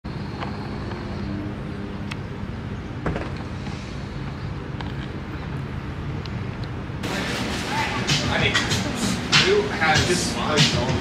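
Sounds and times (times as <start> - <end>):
road vehicle rumble: 0.0 - 11.0.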